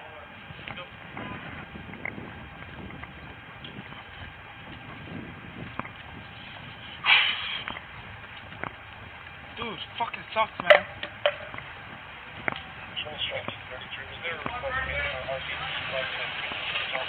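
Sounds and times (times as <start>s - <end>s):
street traffic noise: 0.0s - 17.0s
short loud rushing burst: 6.9s - 7.7s
faint footsteps: 7.6s - 14.8s.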